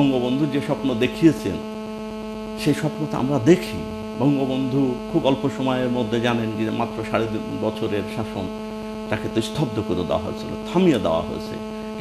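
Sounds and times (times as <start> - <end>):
person speaking: 0.0 - 1.6, 2.6 - 8.5, 9.1 - 12.0
electrical mains hum: 0.0 - 12.0.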